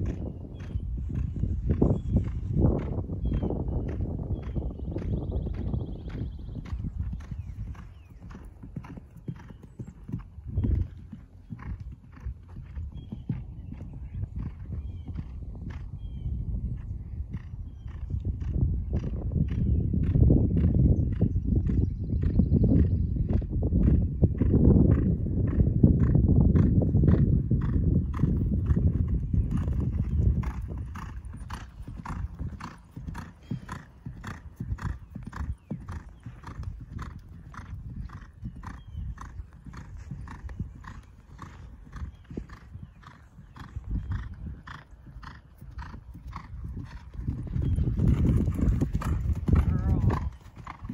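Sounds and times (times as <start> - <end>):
horse hoofbeats on grass: 0.0 - 15.0, 26.0 - 50.9.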